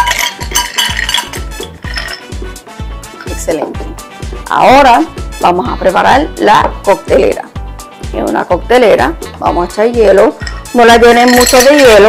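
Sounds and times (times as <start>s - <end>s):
ice cubes clinking into a glass: 0.0s - 2.4s, 10.4s - 12.0s
background music with steady beat: 0.0s - 12.0s.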